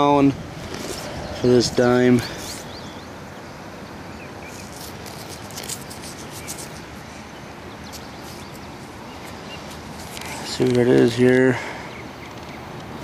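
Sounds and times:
distant highway traffic: 0.0s - 13.0s
small clicks and rustles: 4.5s - 6.9s, 7.9s - 11.5s, 12.2s - 13.0s.

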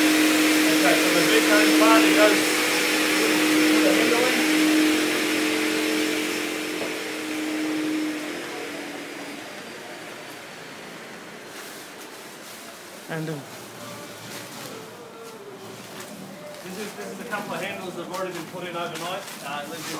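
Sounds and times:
rushing noise: 0.0s - 11.9s
workshop machinery humming: 0.0s - 19.9s.

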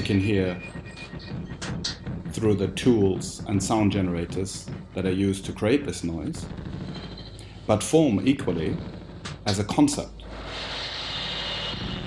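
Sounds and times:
low rumble: 0.0s - 12.0s
machine-like drone: 0.0s - 12.0s.

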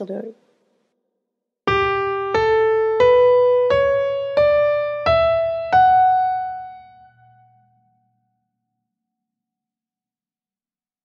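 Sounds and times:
piano notes climbing: 1.7s - 8.0s.

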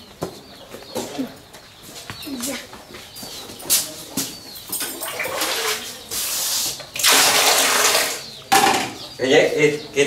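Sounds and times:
water splashing in a basin: 4.9s - 5.8s, 7.0s - 8.2s.

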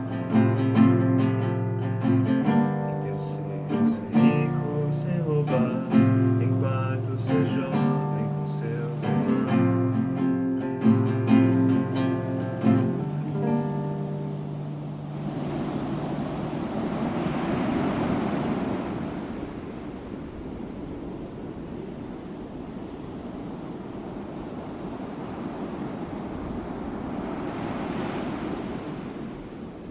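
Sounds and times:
guitar chord: 0.0s - 16.1s
sea waves washing on shore: 0.0s - 29.9s.

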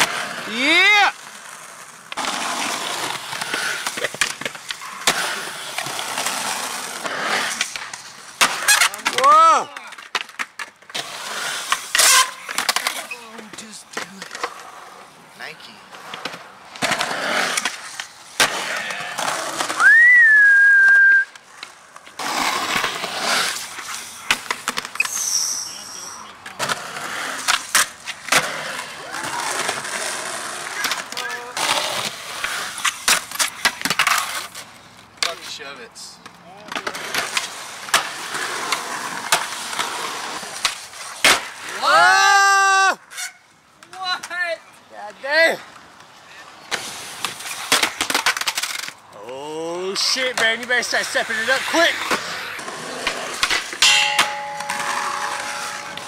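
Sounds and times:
skateboard clacks: 0.0s - 14.7s, 26.4s - 34.6s, 50.0s - 56.0s
skateboard wheels rolling on concrete: 0.0s - 56.0s
loud whistle-like tone: 19.8s - 21.3s.

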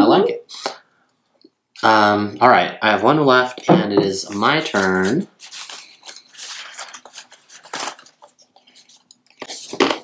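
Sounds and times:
paper slips rustling: 4.2s - 10.0s.

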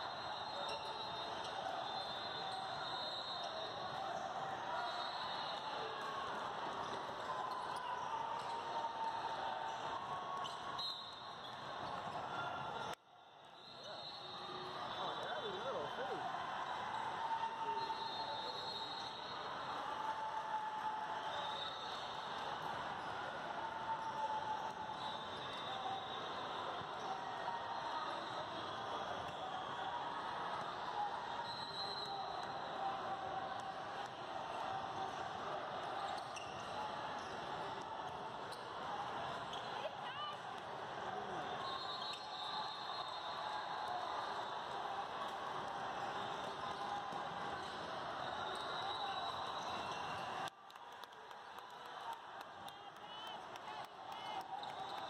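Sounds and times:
echoing chatter of many people: 11.5s - 55.0s.

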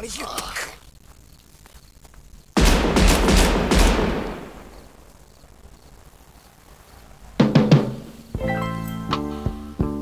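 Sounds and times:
gunshots in quick succession: 2.6s - 4.7s.

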